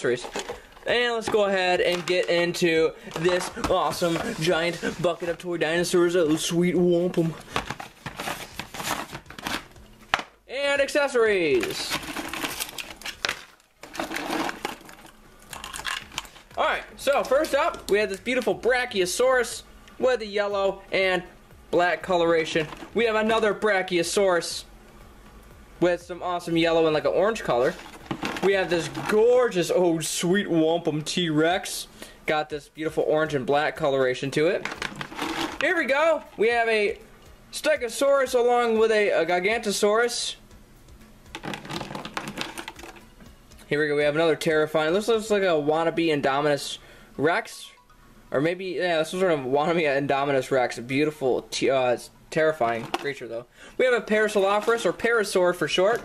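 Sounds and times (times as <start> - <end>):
plastic toys clattering in bucket: 0.1 - 5.4, 11.6 - 16.4, 27.7 - 29.2, 34.6 - 35.7, 41.4 - 43.0, 52.7 - 53.2, 54.4 - 55.0.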